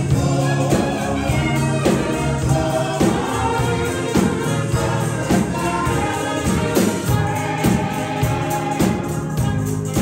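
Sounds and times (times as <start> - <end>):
group of voices singing: 0.0 - 10.0
steady beat: 0.0 - 10.0
tambourine shaking: 0.0 - 10.0.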